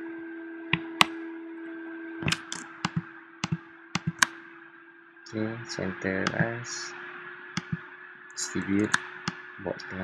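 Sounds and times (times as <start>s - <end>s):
low hum: 0.0s - 10.0s
computer mouse clicks: 2.2s - 4.4s, 6.2s - 6.5s, 7.6s - 7.8s.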